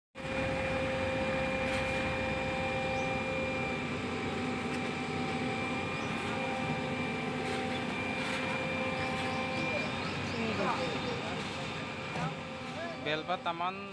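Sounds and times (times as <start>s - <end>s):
constant whine: 0.2s - 13.9s
diesel engine running: 0.2s - 13.9s.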